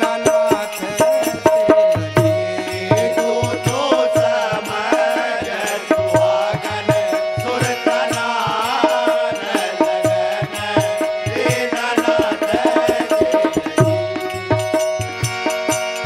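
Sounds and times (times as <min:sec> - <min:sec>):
hand drum beat: 0:00.0 - 0:05.0.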